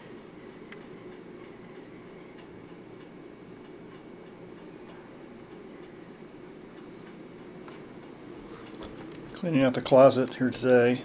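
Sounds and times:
faint ticks: 0:00.5 - 0:06.0.

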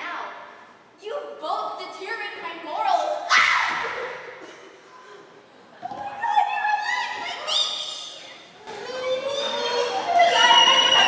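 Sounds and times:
raised drawn-out voices: 0:06.1 - 0:11.0.

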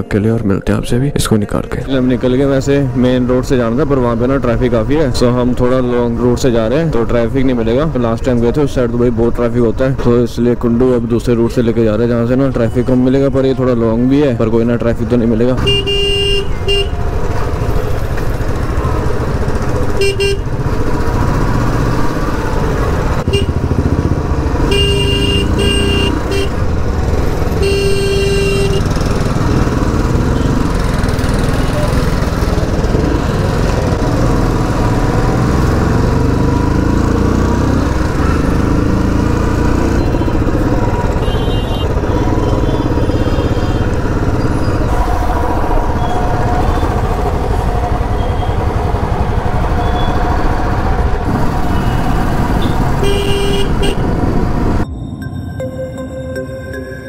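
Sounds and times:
city traffic: 0:00.0 - 0:57.0
car horns beeping: 0:15.6 - 0:17.2, 0:19.8 - 0:20.7, 0:23.1 - 0:23.8, 0:24.6 - 0:26.8, 0:27.4 - 0:29.1, 0:39.9 - 0:44.8, 0:51.7 - 0:54.2
motorcycle engine running: 0:16.9 - 0:54.8.

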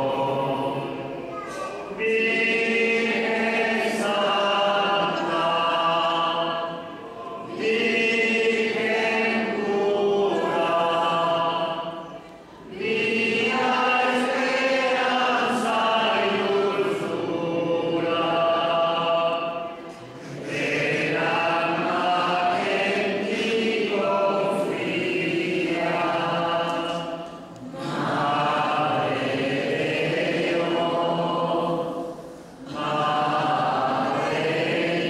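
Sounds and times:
group singing a hymn: 0:00.0 - 0:01.2, 0:01.8 - 0:35.0.

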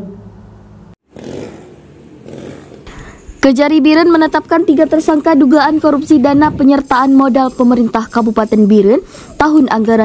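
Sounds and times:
street noise: 0:00.0 - 0:10.0.

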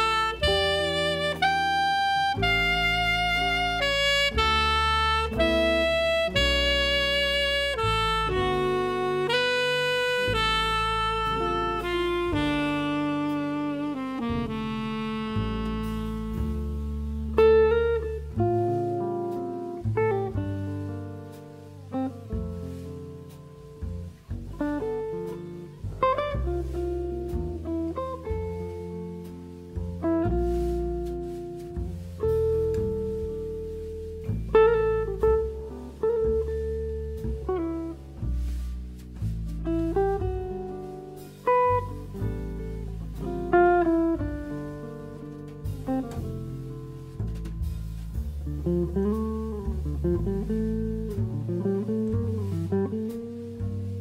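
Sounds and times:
bass notes: 0:00.0 - 0:54.0
electric jazz guitar playing: 0:00.0 - 0:54.0.

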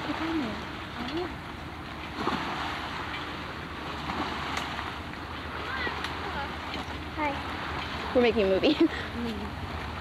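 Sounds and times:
water washing against rocky shore: 0:00.0 - 0:10.0.

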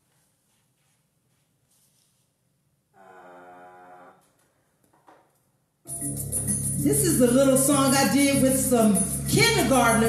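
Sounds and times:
music backing track: 0:05.9 - 0:10.0.

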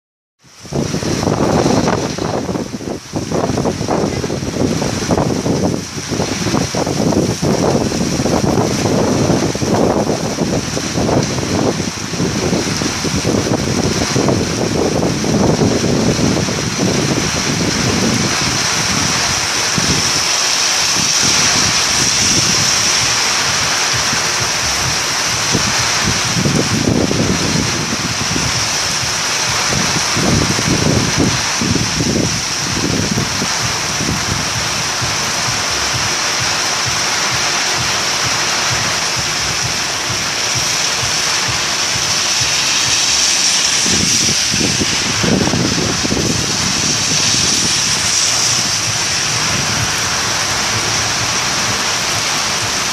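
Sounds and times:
heavy rain pouring: 0:00.4 - 0:52.9
vehicles driving through water: 0:00.7 - 0:52.9.

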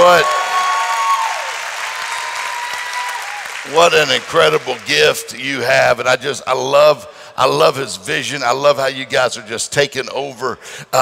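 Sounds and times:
congregation applauding: 0:00.0 - 0:05.4.

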